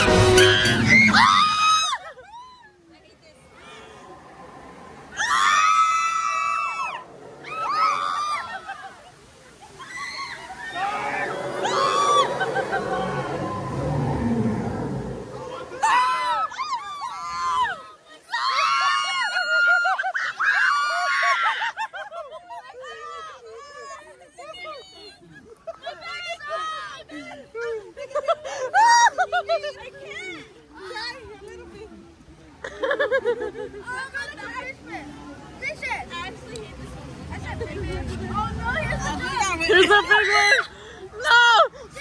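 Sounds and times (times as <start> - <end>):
music: 0.0 - 1.2
people shrieking and screaming: 0.0 - 2.8, 3.5 - 22.0, 38.7 - 42.0.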